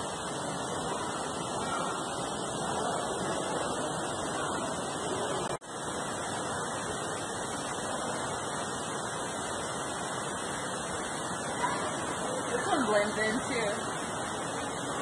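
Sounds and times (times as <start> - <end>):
steady rushing noise: 0.0 - 15.0.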